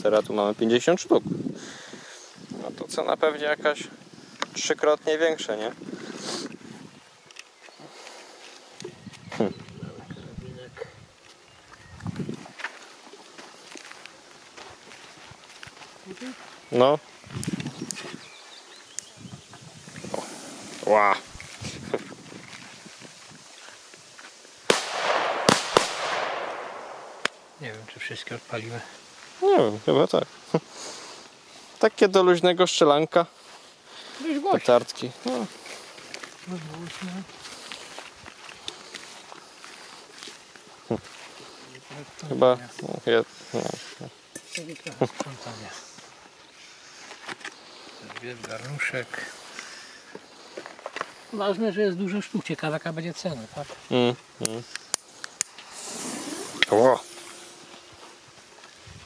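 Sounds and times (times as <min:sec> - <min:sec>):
steady outdoor hiss: 0:00.0 - 0:59.0
firecracker bangs with echo: 0:24.7 - 0:27.4.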